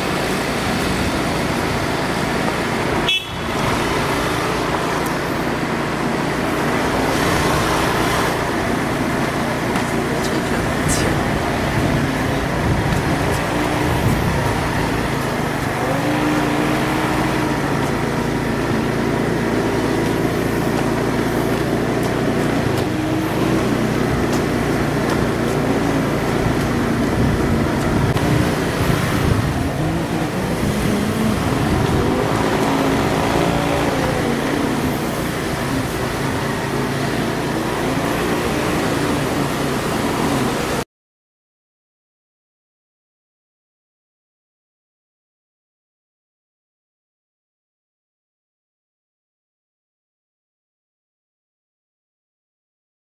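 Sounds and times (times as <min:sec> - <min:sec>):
motor vehicle engine drone: 0:00.0 - 0:40.8.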